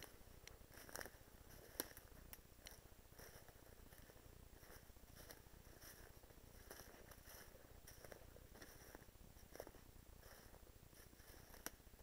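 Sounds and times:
soft rustles: 0:00.0 - 0:12.0.

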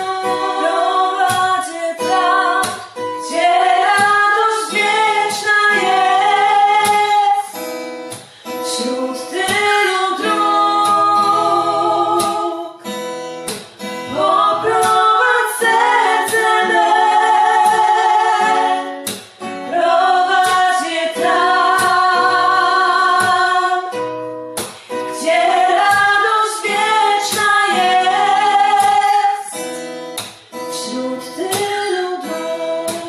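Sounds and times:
woman singing: 0:00.0 - 0:13.0, 0:14.0 - 0:30.0, 0:30.6 - 0:33.0
acoustic guitar: 0:00.0 - 0:33.0.

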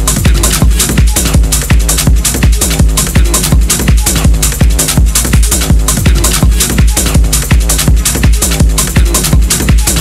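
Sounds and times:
distorted kick drum: 0:00.0 - 0:10.0.

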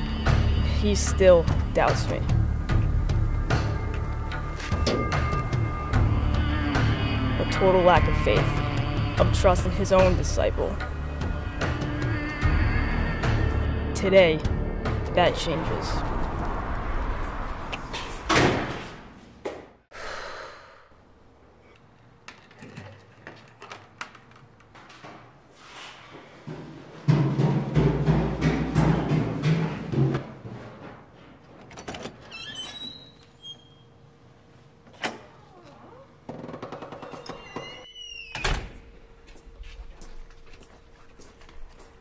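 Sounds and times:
door banging shut: 0:18.0 - 0:19.0, 0:36.3 - 0:38.8
high gliding squeak: 0:32.3 - 0:34.0, 0:37.1 - 0:38.4.

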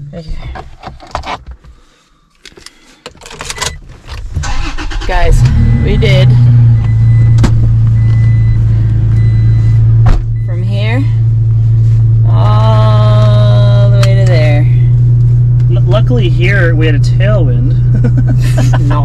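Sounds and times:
truck engine starting and idling: 0:03.4 - 0:18.8.

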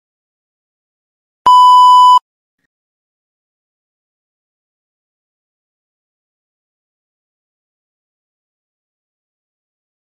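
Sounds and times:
loud electronic beep: 0:01.5 - 0:02.2.

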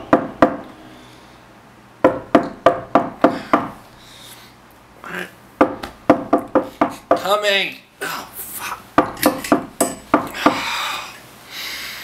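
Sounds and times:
knocking on a door: 0:00.1 - 0:00.6, 0:02.0 - 0:03.8, 0:05.6 - 0:07.3.

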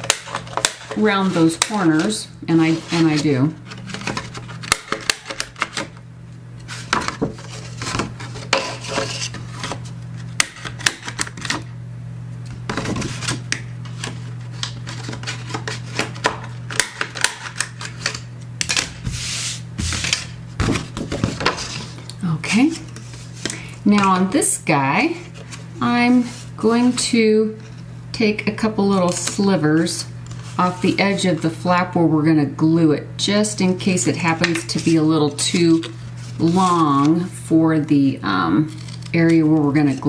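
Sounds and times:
cardboard rustling: 0:00.4 - 0:06.0, 0:06.6 - 0:10.3, 0:12.6 - 0:16.6, 0:34.1 - 0:37.2.

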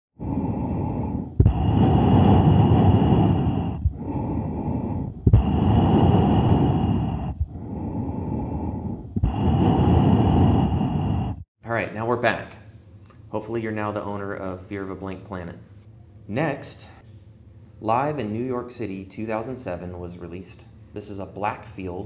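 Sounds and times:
loud slow breathing: 0:00.2 - 0:11.5.

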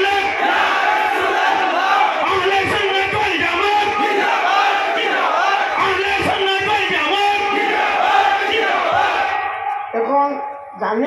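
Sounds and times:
man preaching over loudspeakers: 0:00.0 - 0:00.4, 0:02.2 - 0:04.2, 0:05.8 - 0:07.7.

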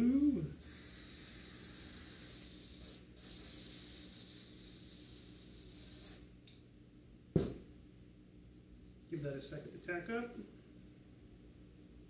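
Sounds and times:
aerosol spray hissing: 0:00.6 - 0:06.3
can knocking on table: 0:07.4 - 0:07.6.

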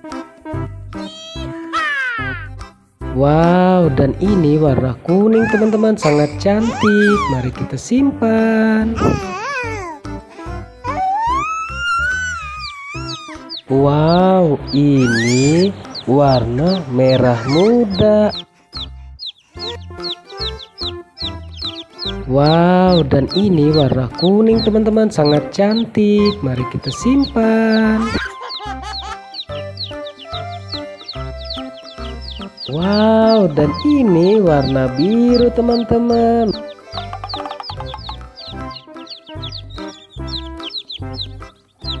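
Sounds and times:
baby chicks peeping: 0:00.0 - 0:02.7, 0:03.4 - 0:42.0
background music: 0:00.0 - 0:42.0
music with bass beat: 0:34.6 - 0:42.0.

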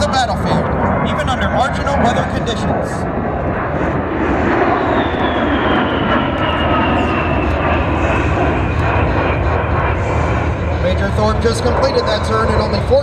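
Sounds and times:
jet engine roar with whine: 0:00.0 - 0:13.0.

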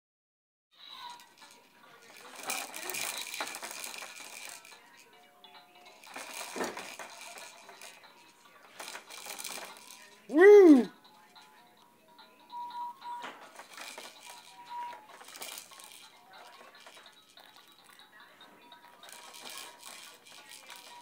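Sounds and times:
baby jumper rattling and clattering: 0:00.9 - 0:11.7, 0:13.1 - 0:21.0.

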